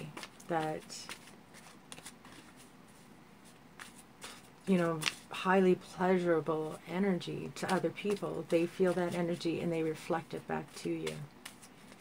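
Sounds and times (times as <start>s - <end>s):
cards being shuffled: 0.0s - 5.4s, 7.4s - 12.0s.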